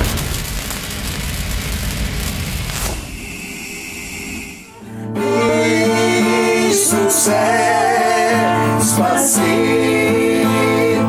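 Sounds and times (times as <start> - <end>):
deep rumbling boom: 0.0 - 3.6.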